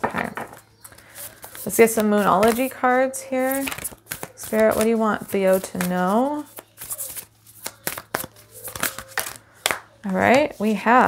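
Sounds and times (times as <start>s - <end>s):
cards being shuffled: 0.5s - 2.8s, 3.4s - 10.8s.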